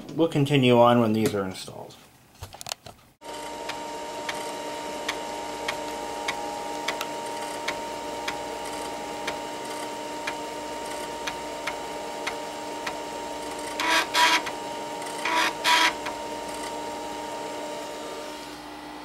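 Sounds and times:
floppy drive head buzzing: 3.2 - 19.0
floppy drive humming and ticking: 3.2 - 19.0.

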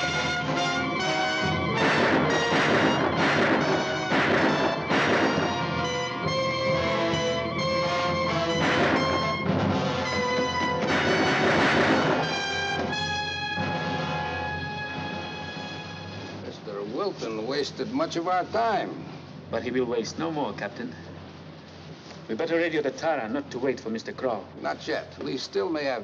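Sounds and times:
crashing orchestral accents: 0.0 - 16.4
dramatic orchestral film music: 0.0 - 16.5.

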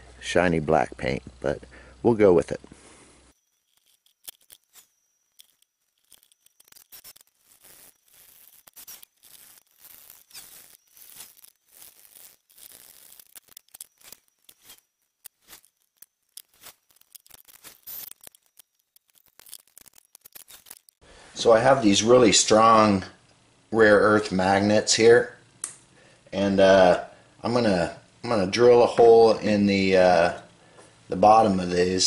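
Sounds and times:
hand work clicks and scrapes: 3.2 - 21.0
screwdriver screwing: 3.4 - 21.0.

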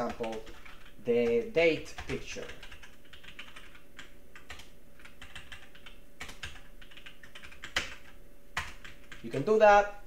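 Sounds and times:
computer keyboard typing: 0.0 - 9.5.

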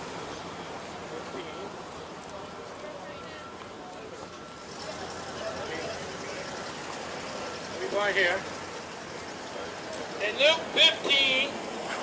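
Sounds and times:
faint voices: 0.0 - 12.0
steady background noise: 0.0 - 12.0.

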